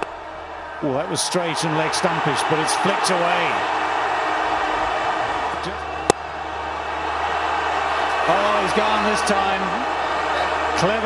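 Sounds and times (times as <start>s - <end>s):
stadium crowd noise: 0.0s - 11.0s
bat striking ball: 6.0s - 6.2s.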